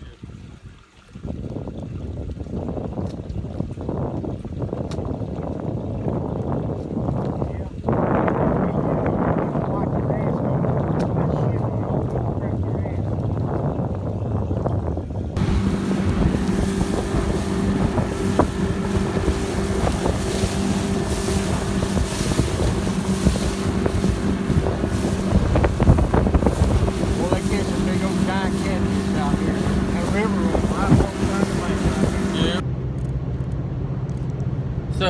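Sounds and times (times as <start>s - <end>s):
outboard motor running: 0.0s - 35.0s
wind rushing over microphone: 0.1s - 32.6s
low rumble: 5.2s - 35.0s
water hissing off hull: 15.3s - 32.6s.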